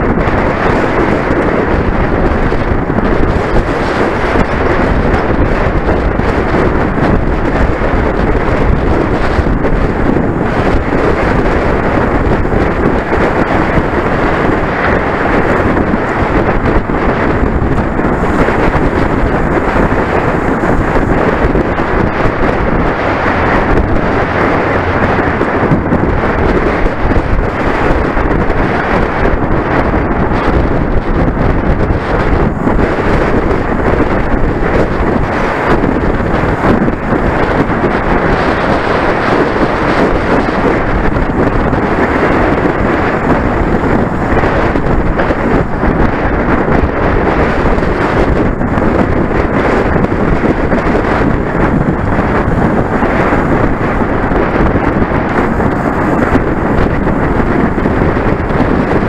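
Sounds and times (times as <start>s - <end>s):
road noise: 0.0s - 59.0s
wind buffeting microphone: 0.0s - 59.0s.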